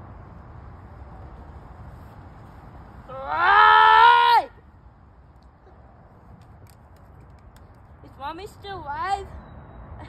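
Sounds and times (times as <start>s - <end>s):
girl screaming: 3.1s - 4.6s.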